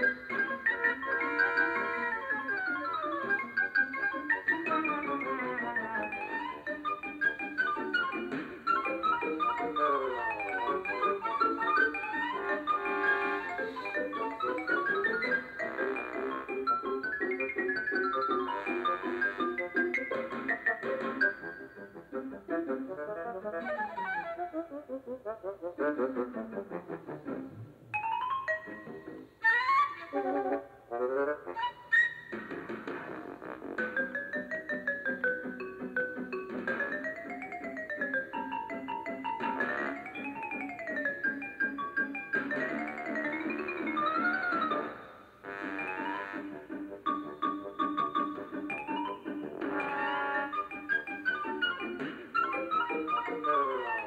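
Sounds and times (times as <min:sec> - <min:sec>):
melody of quick running notes: 0:00.0 - 0:21.8, 0:33.8 - 0:45.0, 0:45.6 - 0:54.0.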